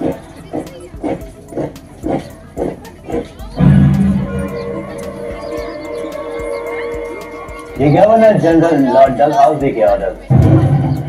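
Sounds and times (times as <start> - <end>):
sustained low sound: 3.6 - 8.1.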